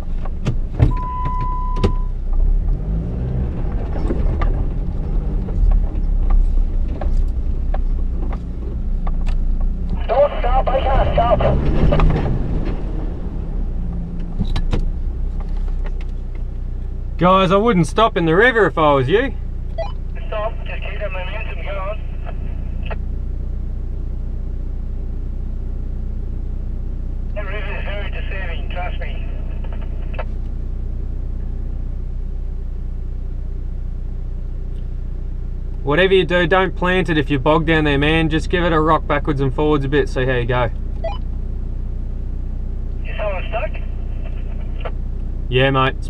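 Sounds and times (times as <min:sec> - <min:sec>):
vehicle engine running: 0:00.0 - 0:46.0.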